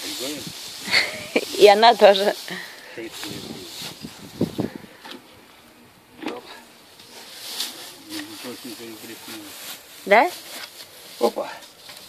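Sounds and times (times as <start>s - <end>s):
pitchfork swishing dry straw: 0.0s - 4.3s, 7.0s - 12.0s.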